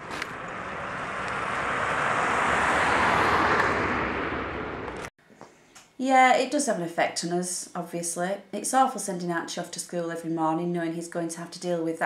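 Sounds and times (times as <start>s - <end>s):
car driving past: 0.0s - 5.1s.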